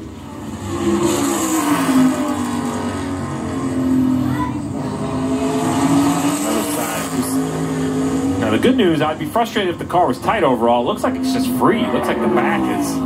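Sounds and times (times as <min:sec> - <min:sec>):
race car engine at high revs: 0:00.0 - 0:13.0.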